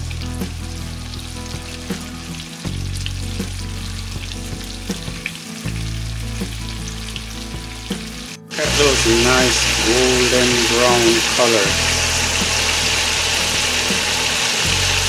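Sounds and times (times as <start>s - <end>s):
chicken deep-frying in oil: 0.0s - 15.0s.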